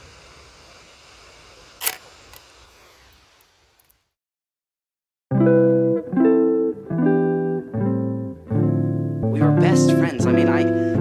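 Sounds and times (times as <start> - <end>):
camera shutter clack: 1.8 - 2.4
faint camera click: 1.8 - 2.5.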